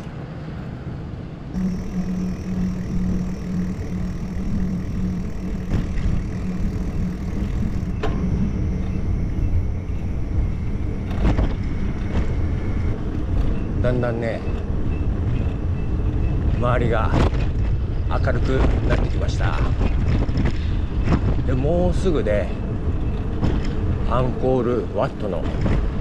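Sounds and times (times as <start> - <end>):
bicycle road noise: 0.0 - 26.0
vehicle engine humming: 0.0 - 26.0.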